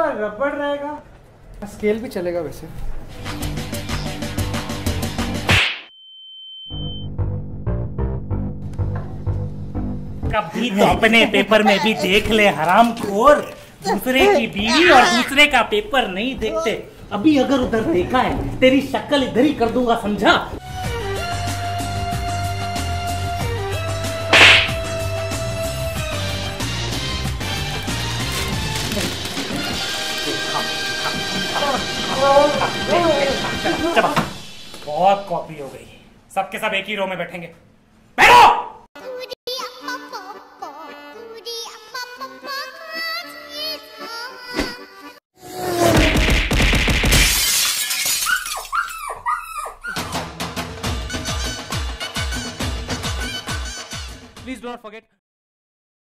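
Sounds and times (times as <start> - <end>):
background music: 3.0 - 5.6, 18.7 - 35.5, 39.5 - 45.2
sharp slap: 5.4 - 5.9, 24.3 - 24.9, 45.9 - 47.3
glass shattering crash: 46.2 - 48.7.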